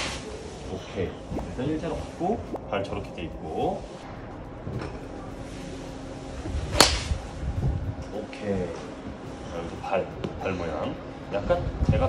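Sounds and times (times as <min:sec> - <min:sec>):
golf club striking ball: 0:06.7 - 0:07.2.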